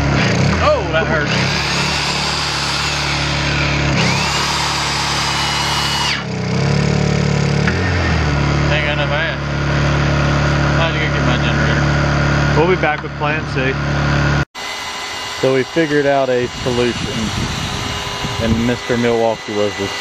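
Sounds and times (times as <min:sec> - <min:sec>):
electric drill boring into steel: 0:00.0 - 0:07.0, 0:14.6 - 0:20.0
portable generator running: 0:00.0 - 0:20.0.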